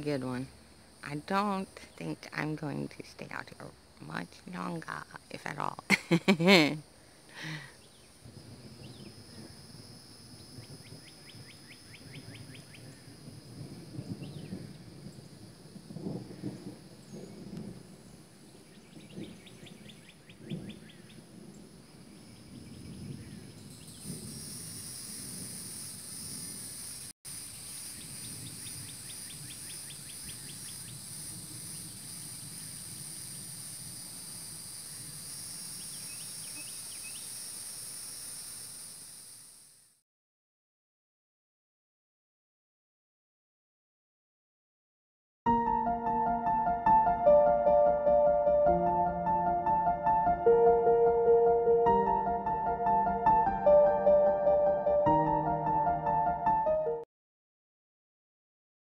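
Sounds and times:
rain hissing: 0:05.2 - 0:40.0
distant thunder rumbling: 0:08.2 - 0:26.7, 0:28.0 - 0:34.2
songbird trilling: 0:27.5 - 0:31.0, 0:35.8 - 0:37.3.

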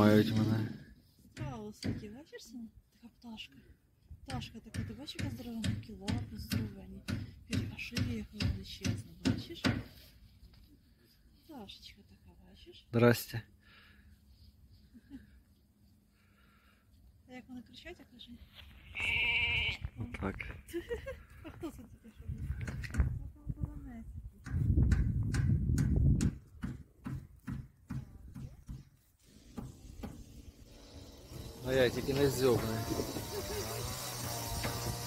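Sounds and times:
animal bleat: 0:18.8 - 0:19.9.

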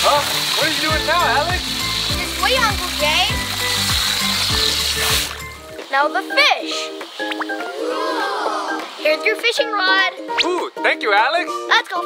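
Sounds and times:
hose water spraying: 0:00.0 - 0:10.3
background music: 0:00.0 - 0:12.0.

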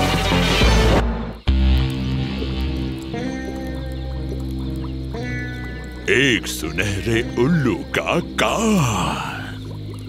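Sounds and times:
background music low notes: 0:00.0 - 0:10.0.

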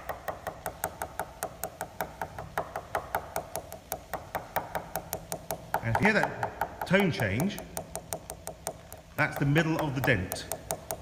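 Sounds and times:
coin tapping on glider wing: 0:00.0 - 0:11.0.

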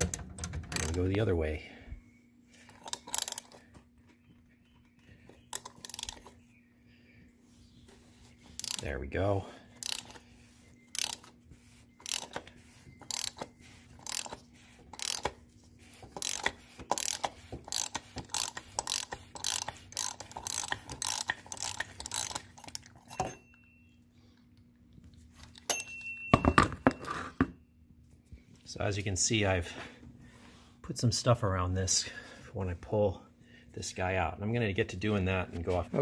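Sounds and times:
ratchet wrench clicking: 0:00.8 - 0:01.2, 0:02.7 - 0:03.6, 0:05.5 - 0:06.3, 0:08.5 - 0:08.9, 0:09.8 - 0:10.2, 0:10.9 - 0:11.4, 0:12.0 - 0:15.4, 0:16.0 - 0:23.0.

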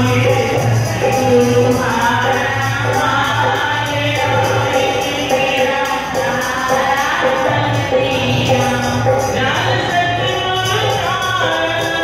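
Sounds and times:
hand drum beat: 0:00.0 - 0:12.0
harmonium: 0:00.0 - 0:12.0
women singing devotional song: 0:00.0 - 0:12.0.

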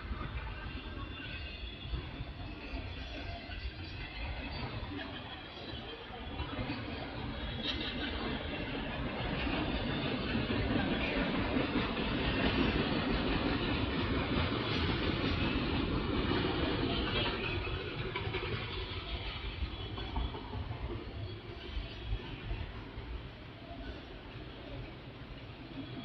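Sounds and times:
steel train wheels on rail: 0:00.0 - 0:26.0.

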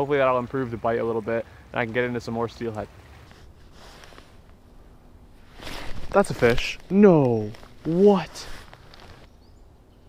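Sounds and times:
clothing rustling: 0:03.2 - 0:04.7, 0:05.4 - 0:09.3.

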